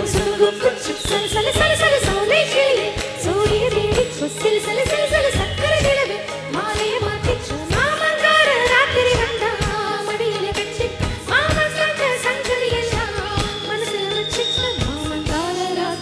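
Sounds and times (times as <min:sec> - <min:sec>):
instrumental backing: 0:00.0 - 0:16.0
percussion beat: 0:00.0 - 0:16.0
woman singing: 0:00.0 - 0:16.0.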